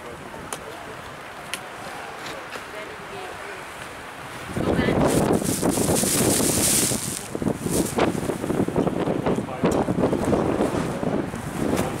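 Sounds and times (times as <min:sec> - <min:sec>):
wind buffeting microphone: 0:04.0 - 0:12.0.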